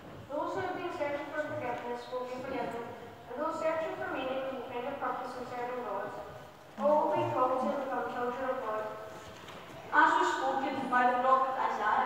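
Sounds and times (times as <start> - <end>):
person speaking: 0.3 - 12.0.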